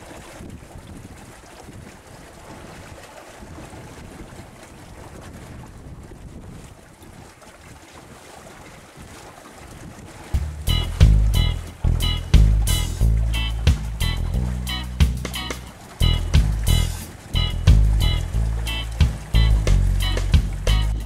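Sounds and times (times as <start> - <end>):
wind rushing over microphone: 0.0 - 7.3
sea water washing: 0.0 - 21.0
low rumbles: 10.4 - 21.0.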